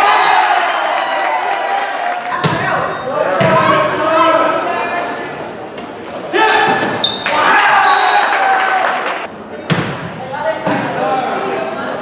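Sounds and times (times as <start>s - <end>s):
sneakers squeaking on court: 5.8s - 8.0s.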